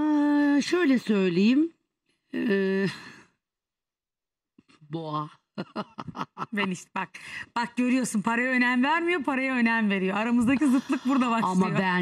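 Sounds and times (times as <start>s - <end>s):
woman speaking: 6.4s - 12.0s.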